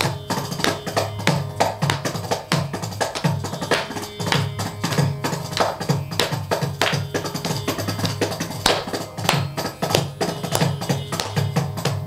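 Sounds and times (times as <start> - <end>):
fast hand percussion: 0.0 - 12.0.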